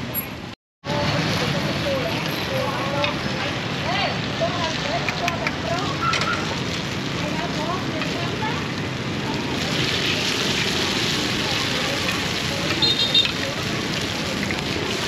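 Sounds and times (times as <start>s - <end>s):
batter sizzling in pans: 0.9s - 15.0s.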